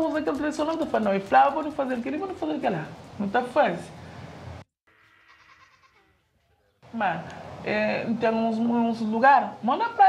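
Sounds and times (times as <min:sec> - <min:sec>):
faint outdoor ambience: 0:00.0 - 0:10.0
farm animal calls: 0:04.9 - 0:06.8.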